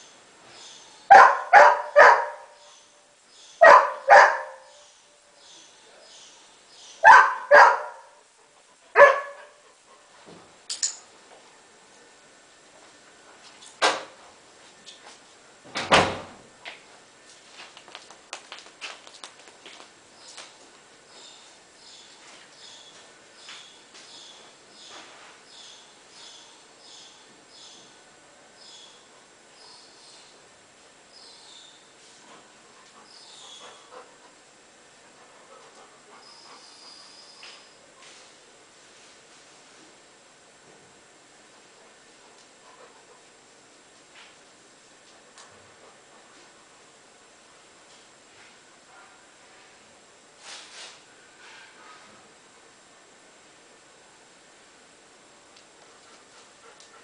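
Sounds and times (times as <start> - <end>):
dog barking: 1.1 - 2.6, 3.6 - 4.7, 7.0 - 8.2, 9.0 - 9.6, 48.9 - 49.2.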